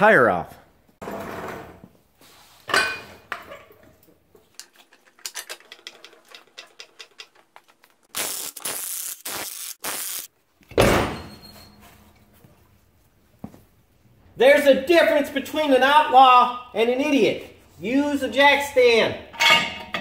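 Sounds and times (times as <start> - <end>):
rapid metallic clicks and clinks: 4.6 - 7.8.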